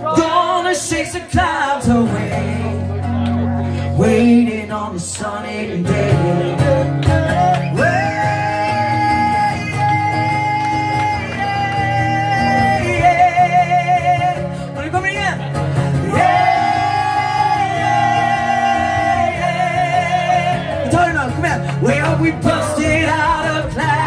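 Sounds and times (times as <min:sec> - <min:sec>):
strummed acoustic guitar: 0:00.0 - 0:24.0.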